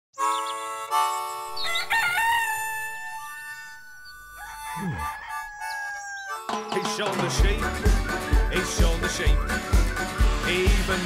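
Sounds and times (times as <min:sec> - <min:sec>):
cartoon rooster crowing: 0:01.6 - 0:06.6
theme song singing: 0:06.5 - 0:11.0.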